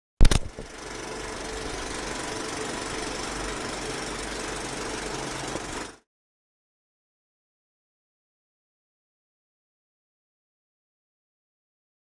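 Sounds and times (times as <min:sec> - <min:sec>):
film projector clattering: 0:00.2 - 0:06.0.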